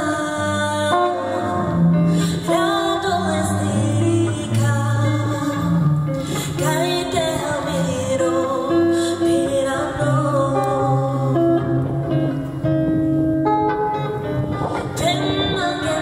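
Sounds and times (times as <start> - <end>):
woman singing: 0.0 - 12.3, 14.5 - 16.0
acoustic guitar: 0.0 - 16.0.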